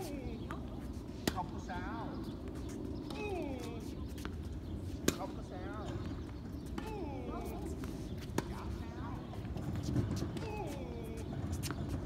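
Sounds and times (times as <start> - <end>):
tennis ball bouncing: 5.0 - 7.4, 8.2 - 8.8.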